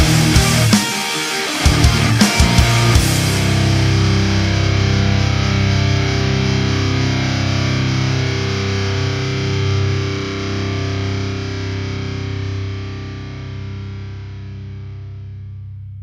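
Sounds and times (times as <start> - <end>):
distorted electric guitar and bass: 0.0 - 16.0.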